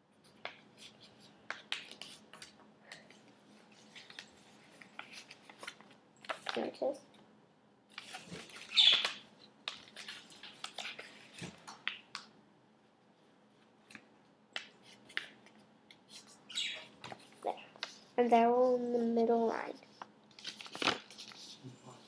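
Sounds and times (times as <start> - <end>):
paper being folded: 3.6 - 6.7, 7.9 - 12.1, 19.9 - 22.0
budgerigars chirping: 8.7 - 9.0, 16.5 - 16.9.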